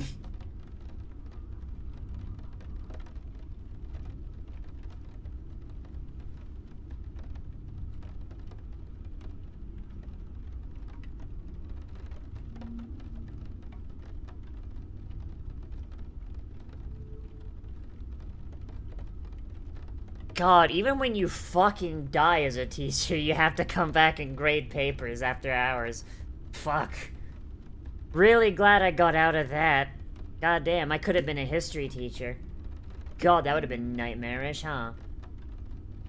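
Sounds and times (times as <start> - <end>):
low background rumble: 0.0 - 36.0.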